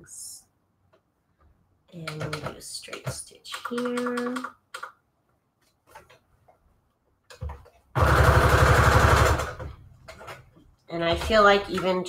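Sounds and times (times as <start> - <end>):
sewing machine stitching: 8.0 - 10.4.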